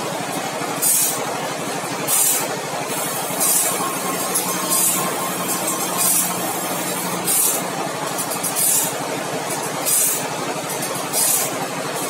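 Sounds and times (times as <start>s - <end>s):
machine humming: 3.0s - 9.1s
grinding wheel grinding saw teeth: 3.2s - 8.9s
high-pitched grind: 3.2s - 8.9s.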